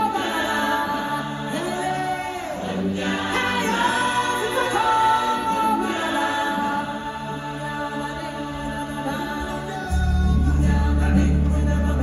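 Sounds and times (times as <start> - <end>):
choir singing sustained notes: 0.0 - 12.0.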